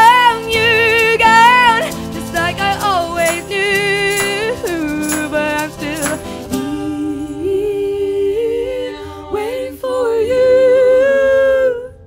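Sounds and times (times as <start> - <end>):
a cappella vocal harmony: 0.0 - 12.0.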